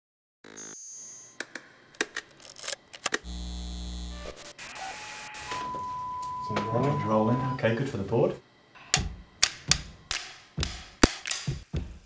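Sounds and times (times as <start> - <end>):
steady high beep tone: 5.2 - 7.7.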